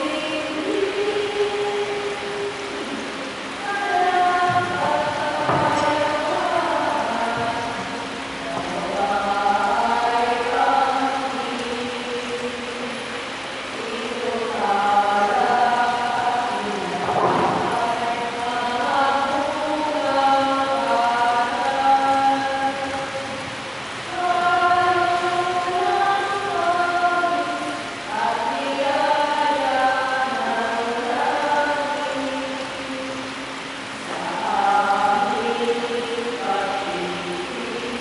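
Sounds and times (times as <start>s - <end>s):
congregation singing a hymn: 0.0s - 33.4s, 34.0s - 38.0s.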